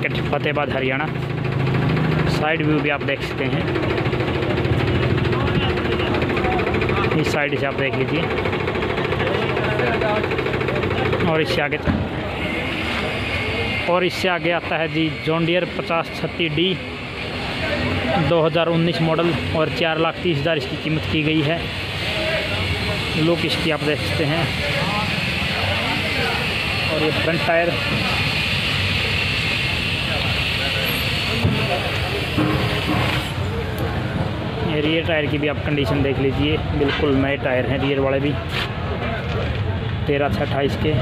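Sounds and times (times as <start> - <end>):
vehicle engine running: 0.0 - 41.0
faint voices: 3.3 - 41.0.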